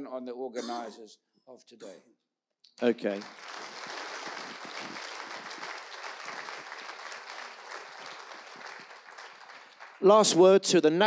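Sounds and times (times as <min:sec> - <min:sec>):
audience applauding: 0:02.8 - 0:10.6.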